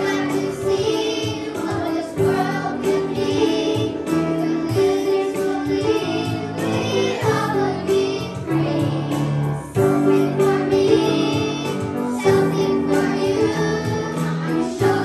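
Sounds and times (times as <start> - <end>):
children singing: 0.0 - 15.0
music: 0.0 - 15.0.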